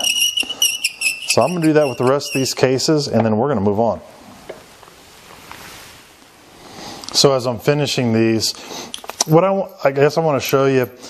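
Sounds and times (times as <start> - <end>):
faint steady hiss: 1.3 - 11.0.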